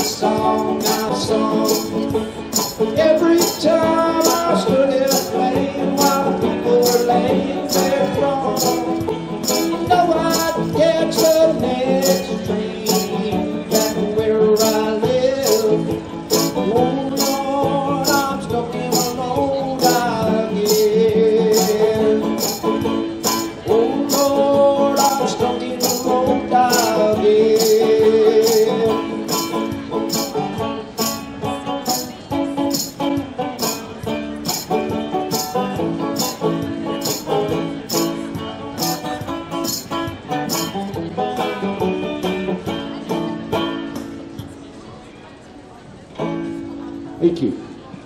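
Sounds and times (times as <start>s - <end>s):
looped shaker percussion: 0.0s - 41.6s
banjo strumming: 0.0s - 47.2s.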